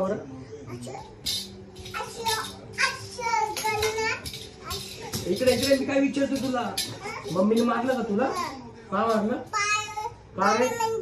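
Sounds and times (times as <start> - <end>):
young child's voice: 1.9 - 5.2, 9.5 - 11.0.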